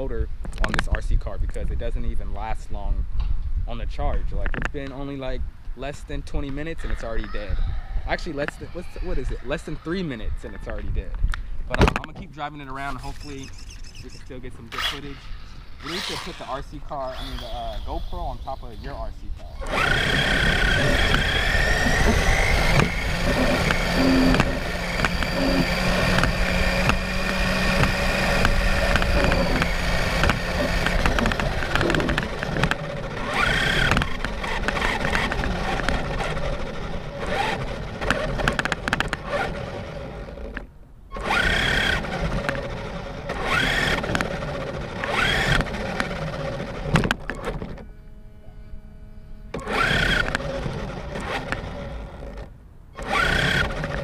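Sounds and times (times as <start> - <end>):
electric motor whine: 12.9 - 54.0
rc car tyres rattling on concrete: 19.6 - 40.6, 41.2 - 47.4.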